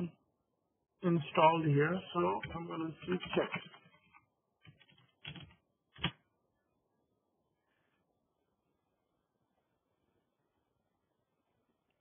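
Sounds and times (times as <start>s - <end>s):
keyboard typing: 2.3s - 6.2s.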